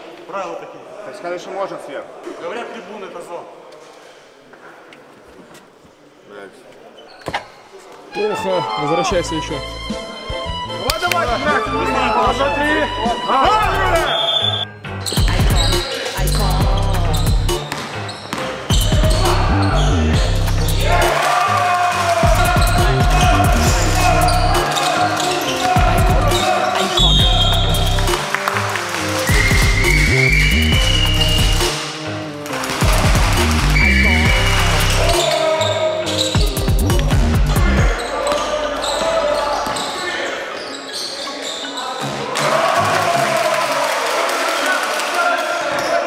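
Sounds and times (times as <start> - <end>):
basketball bouncing on gym floor: 15.2 - 15.7
music with heavy bass beat: 15.2 - 17.7, 18.7 - 21.2, 22.2 - 24.7, 25.7 - 26.4, 27.0 - 28.3, 29.3 - 31.8, 32.7 - 35.2, 36.4 - 38.0.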